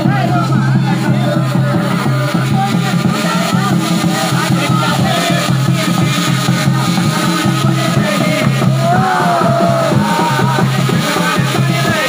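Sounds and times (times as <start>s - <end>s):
band playing dance music: 0.0s - 12.0s
drums steady beat: 0.0s - 12.0s.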